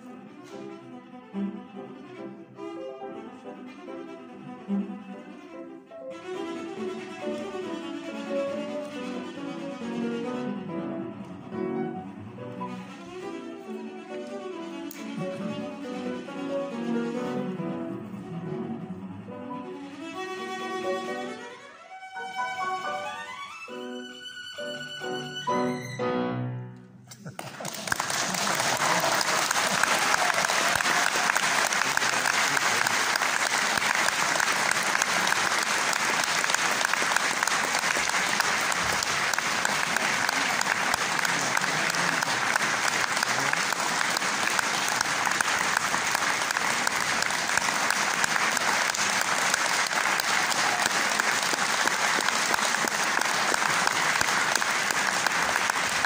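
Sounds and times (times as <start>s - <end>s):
audience applause: 27.2s - 56.0s.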